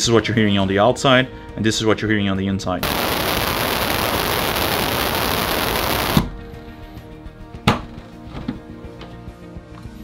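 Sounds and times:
loud masking noise: 2.8s - 6.2s.

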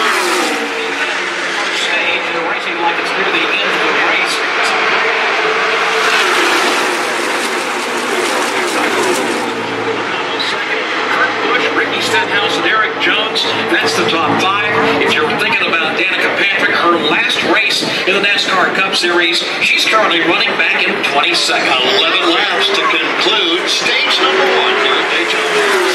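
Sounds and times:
race cars speeding past: 0.0s - 16.6s, 20.0s - 25.9s
voices: 0.0s - 25.9s.

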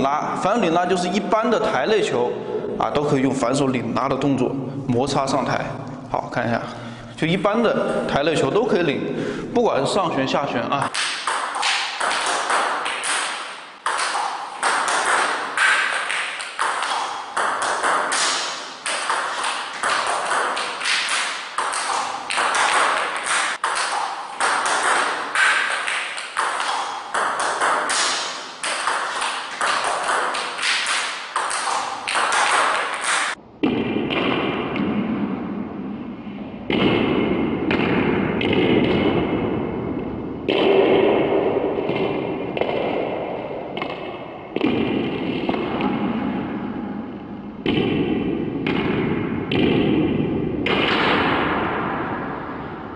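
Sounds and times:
ball bouncing on table: 10.8s - 35.0s
table tennis ball hits: 10.8s - 35.4s, 36.7s - 39.6s, 40.5s - 46.4s, 47.6s - 52.2s.

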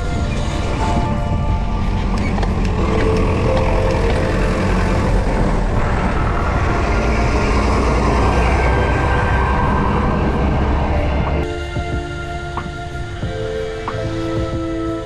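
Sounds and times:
heavy trucks passing: 0.0s - 11.5s
wind rumble on microphone: 0.0s - 15.0s.

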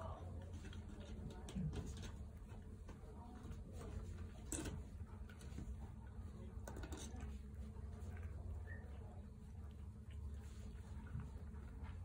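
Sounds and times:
kittens chewing and lapping: 0.0s - 12.0s.

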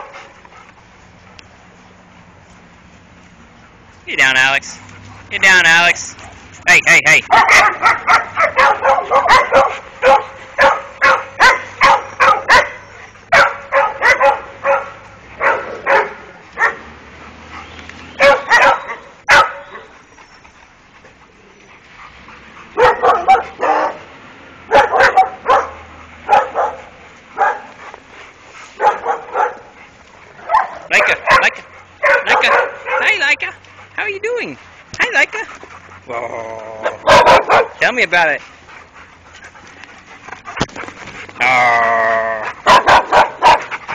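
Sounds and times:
dogs barking: 0.0s - 0.7s, 4.3s - 28.1s, 28.7s - 43.9s.

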